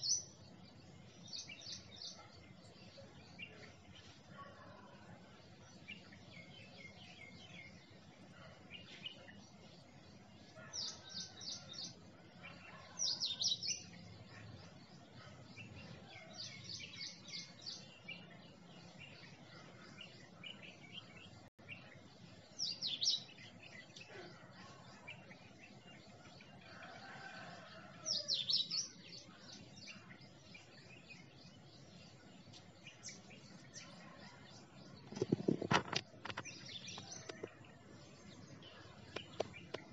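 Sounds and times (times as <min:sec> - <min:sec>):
birds chirping: 0:00.0 - 0:39.9
faint background noise: 0:00.0 - 0:39.9.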